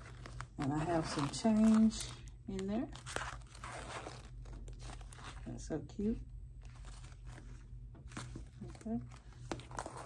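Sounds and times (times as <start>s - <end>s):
coin purse rustling and scraping: 0.0s - 5.6s, 6.6s - 10.0s.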